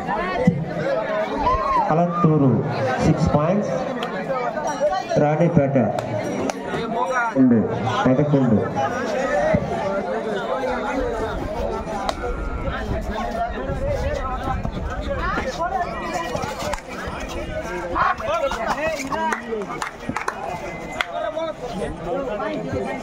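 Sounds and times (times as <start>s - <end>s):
crowd shouting and chattering: 0.0s - 23.0s.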